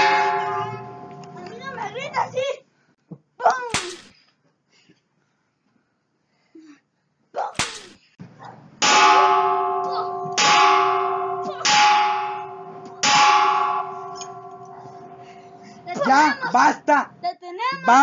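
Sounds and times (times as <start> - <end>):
metallic bell-like clang: 0.0 - 1.8, 8.8 - 15.9.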